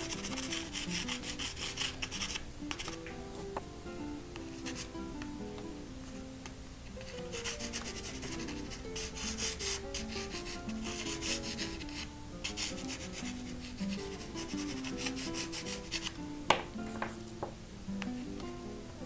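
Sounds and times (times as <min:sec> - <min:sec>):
pastel scratching on paper: 0:00.0 - 0:03.0, 0:07.0 - 0:16.1
background music: 0:00.0 - 0:19.0.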